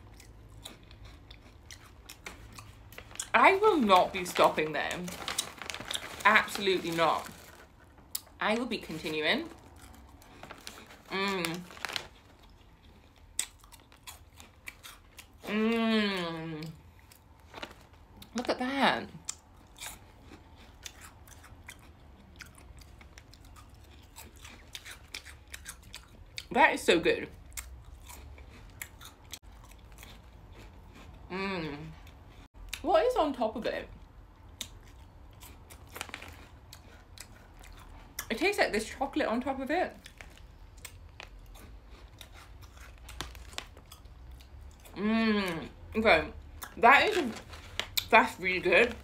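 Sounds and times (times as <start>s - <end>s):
chewing crispy rice cakes: 0.0s - 18.5s, 19.1s - 26.6s, 27.3s - 32.9s, 33.9s - 39.0s, 39.9s - 45.8s, 46.4s - 49.0s.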